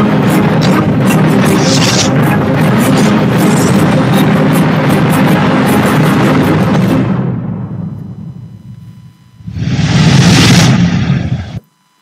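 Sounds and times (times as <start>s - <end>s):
deep rumble: 9.4s - 11.6s
whoosh and rumble swell: 9.5s - 11.6s.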